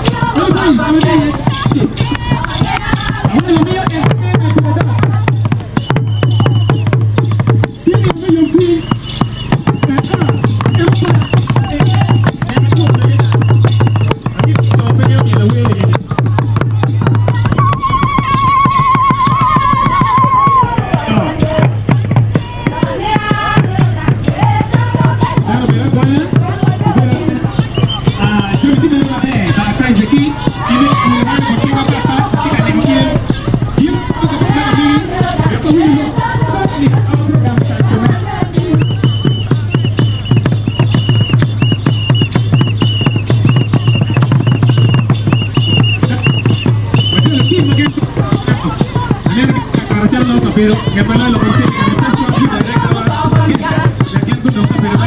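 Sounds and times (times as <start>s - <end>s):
drums beaten with sticks: 0.0s - 55.0s
high whistle blasts: 5.8s - 6.9s, 8.6s - 11.5s, 13.4s - 14.2s, 17.6s - 20.7s, 38.8s - 47.8s.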